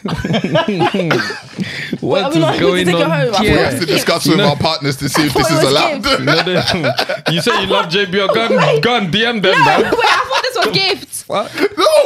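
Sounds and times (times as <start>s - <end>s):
people laughing loudly: 0.0s - 2.6s, 5.0s - 12.0s.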